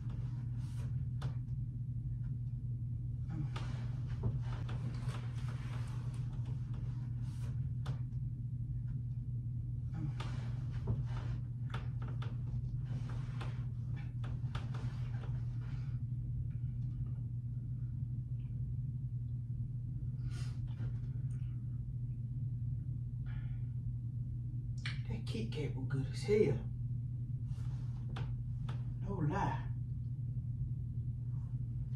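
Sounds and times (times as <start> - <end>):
bedding and clothing rustling: 0.0 - 1.5, 3.3 - 8.2, 9.9 - 17.0, 27.4 - 29.0
steady low hum: 0.0 - 31.9.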